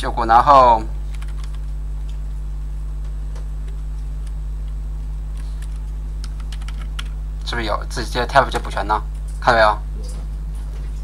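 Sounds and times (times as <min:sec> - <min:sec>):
steady low hum: 0:00.0 - 0:11.0
computer keyboard clicks: 0:01.1 - 0:02.2, 0:03.6 - 0:07.2.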